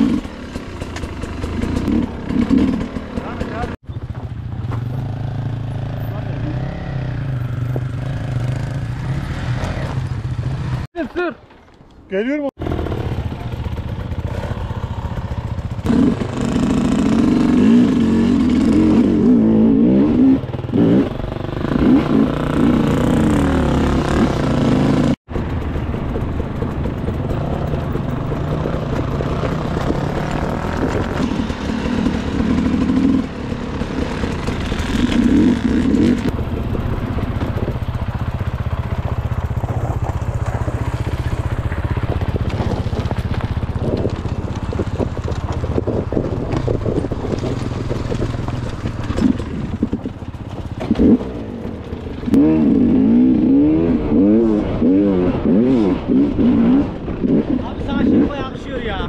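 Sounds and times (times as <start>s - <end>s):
dirt bike engines revving: 0.0s - 11.4s, 12.1s - 59.0s.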